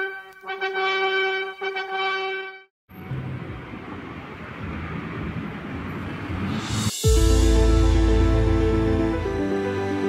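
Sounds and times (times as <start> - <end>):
distant traffic: 2.9 - 8.2.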